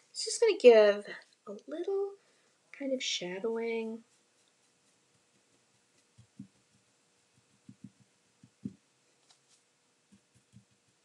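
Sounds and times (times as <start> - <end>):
paint brush soft taps: 4.0 - 11.0.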